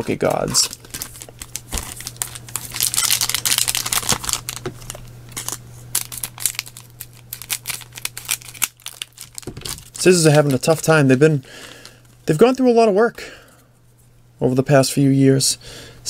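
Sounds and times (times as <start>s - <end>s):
foil wrappers crinkling: 0.0s - 12.2s
low steady hum: 0.0s - 16.0s.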